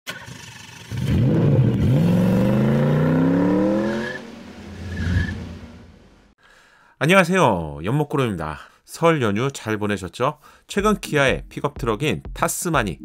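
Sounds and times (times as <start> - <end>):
car engine revving: 0.7 - 6.3.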